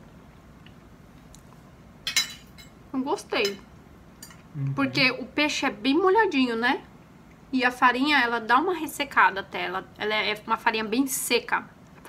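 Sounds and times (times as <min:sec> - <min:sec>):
metal fork clinking on dish: 0:02.1 - 0:02.8.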